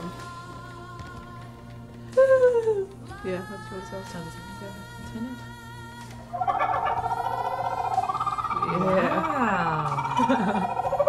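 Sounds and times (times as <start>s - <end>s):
person laughing: 2.2s - 2.9s, 8.6s - 11.0s
kookaburra call: 6.3s - 11.0s.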